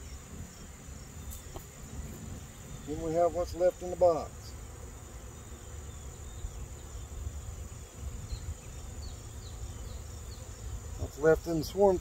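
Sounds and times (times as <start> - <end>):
high-pitched insect trill: 0.0 - 12.0
honeybees buzzing: 0.0 - 12.0.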